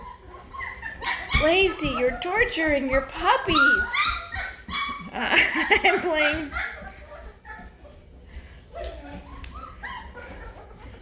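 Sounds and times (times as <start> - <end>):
puppies whimpering and squeaking: 0.0 - 11.0.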